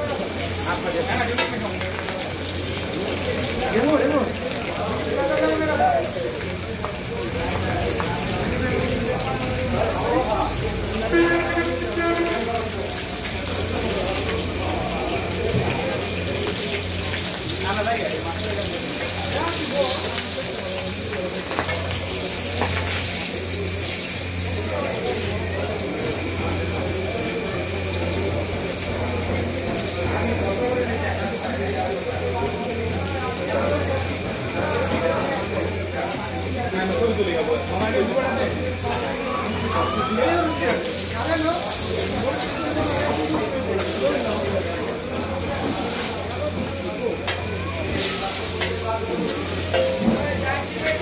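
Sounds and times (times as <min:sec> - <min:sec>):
fish frying in oil: 0:00.0 - 0:51.0
metal spatula clinking on pan: 0:49.5 - 0:51.0.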